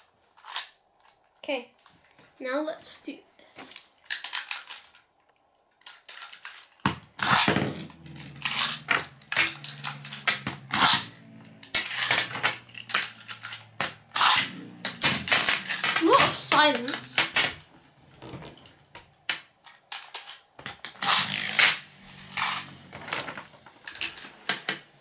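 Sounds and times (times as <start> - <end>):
spinning tops whirring: 7.2 - 17.5, 21.0 - 23.3
spinning tops clacking: 7.4 - 17.5.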